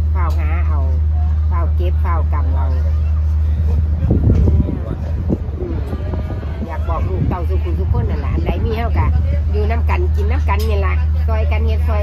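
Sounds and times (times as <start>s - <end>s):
woman's voice: 0.0s - 3.0s, 6.6s - 12.0s
steady low rumble: 0.0s - 12.0s.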